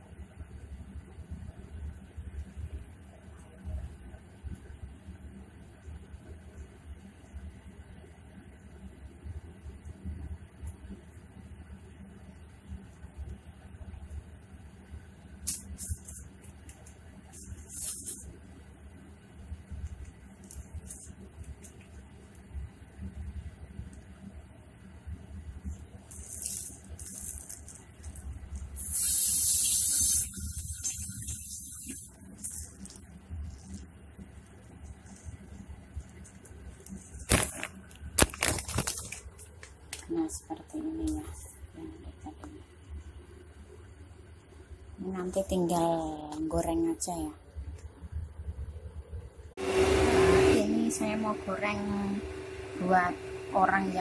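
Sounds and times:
low steady hum: 0.0s - 54.0s
hands rustling plastic bag: 26.1s - 29.0s, 36.1s - 39.8s.

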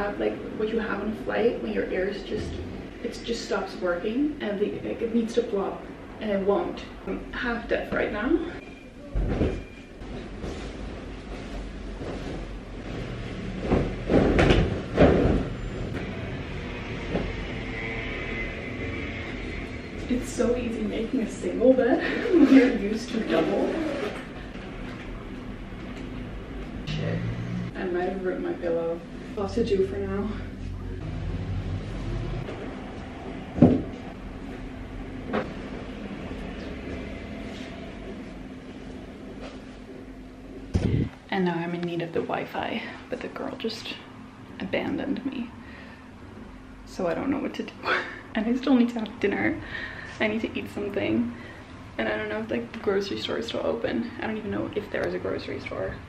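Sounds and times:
steady low hum: 0.0s - 56.0s
bed sheets rustling and flapping: 9.1s - 15.6s.

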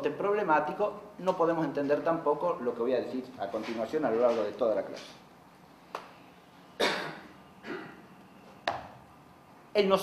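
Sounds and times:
man coughing: 6.8s - 8.0s.

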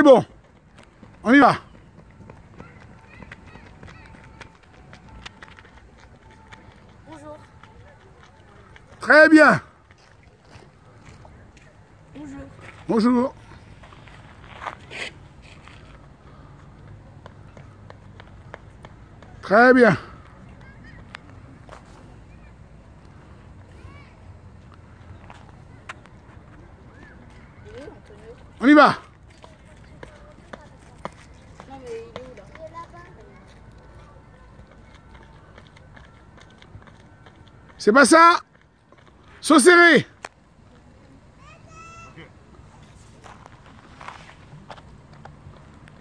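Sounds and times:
running footsteps on rubber track: 0.0s - 46.0s
light foot taps: 17.1s - 19.4s.

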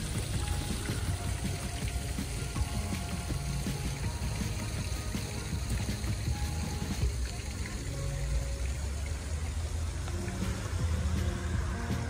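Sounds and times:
fountain water splashing: 0.0s - 12.0s.

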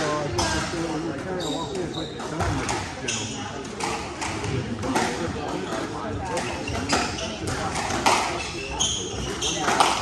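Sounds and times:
spectators chatting: 0.0s - 10.0s.

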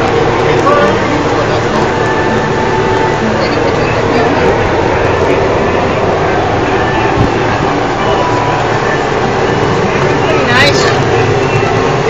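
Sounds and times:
indistinct voices: 0.0s - 12.0s
loud steady rumbling: 0.0s - 12.0s.

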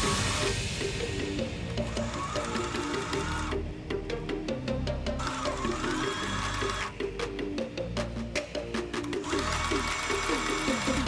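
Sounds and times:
background music: 0.0s - 11.0s
sewing machine stitching: 1.8s - 3.6s, 5.2s - 6.9s, 9.2s - 11.0s.

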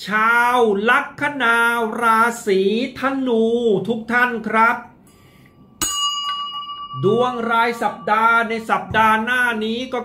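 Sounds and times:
brass bell ringing: 5.1s - 9.6s.

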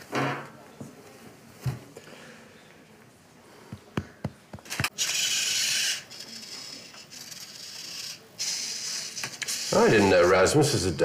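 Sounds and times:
toy robot motors whirring: 4.7s - 10.5s.

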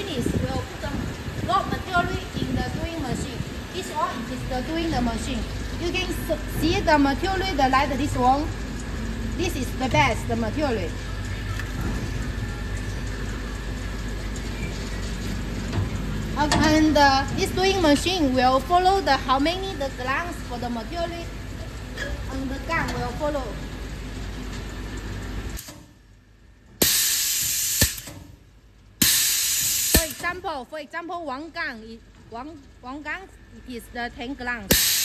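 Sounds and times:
machinery low hum: 0.0s - 35.0s
compressed air hiss: 26.8s - 28.1s, 29.0s - 30.2s, 34.7s - 35.0s.

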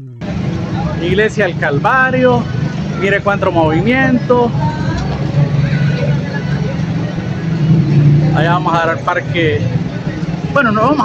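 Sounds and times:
faint voices of people: 0.0s - 11.0s
low hum of vehicle engines: 0.0s - 11.0s.

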